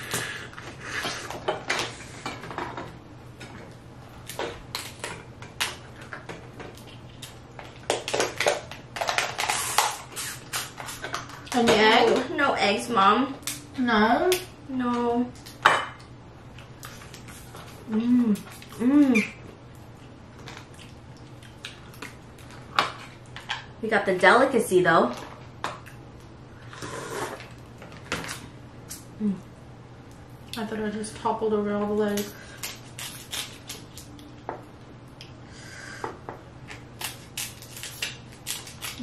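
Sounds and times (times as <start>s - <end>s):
noisy slurp: 26.7s - 27.4s
crab shell cracking: 37.0s - 39.0s.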